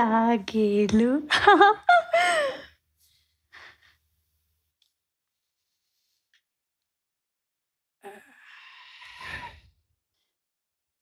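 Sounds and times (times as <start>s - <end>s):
person sighing: 8.0s - 9.6s.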